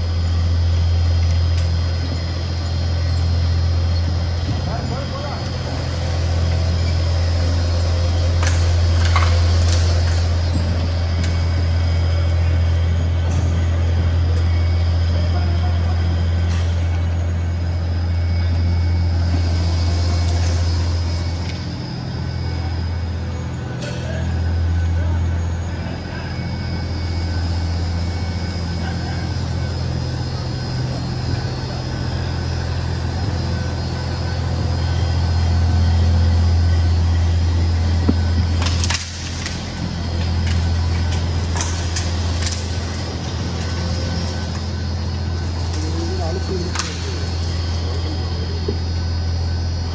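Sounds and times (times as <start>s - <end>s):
machine hum: 0.0s - 49.9s.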